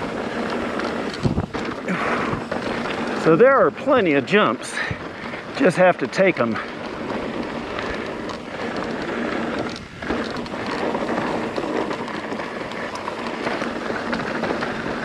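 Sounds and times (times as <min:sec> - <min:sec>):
bike tyres rolling over gravel: 0:00.0 - 0:15.0.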